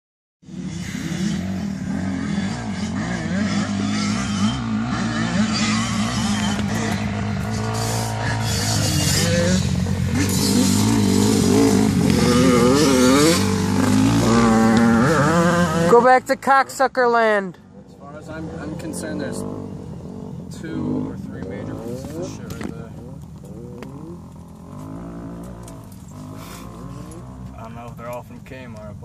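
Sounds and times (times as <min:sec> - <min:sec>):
atv engine idling and revving: 0:00.4 - 0:29.0.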